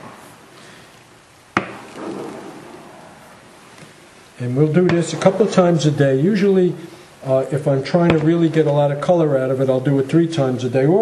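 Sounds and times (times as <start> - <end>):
sharp knock: 1.6 - 2.4.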